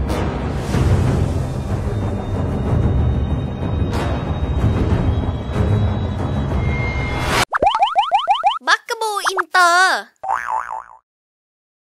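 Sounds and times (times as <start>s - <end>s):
short warbling tone: 7.4s - 8.6s
rising boing chirps: 7.5s - 8.6s, 10.2s - 11.0s
squeaky cartoon voice: 8.6s - 10.1s.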